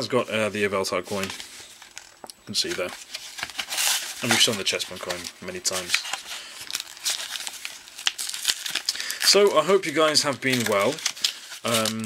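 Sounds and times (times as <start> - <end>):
plastic and foil wrapper crinkling: 1.1 - 12.0
sharp plastic crackles: 1.1 - 12.0.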